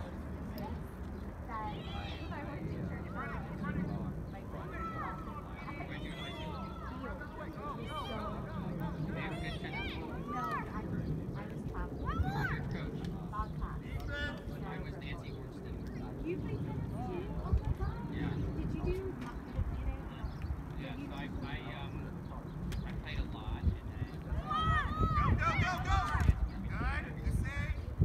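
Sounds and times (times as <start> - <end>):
steady low rumble: 0.0 - 6.0, 7.0 - 28.0
distant shouts of players: 1.6 - 2.5, 4.5 - 8.5, 24.3 - 26.4.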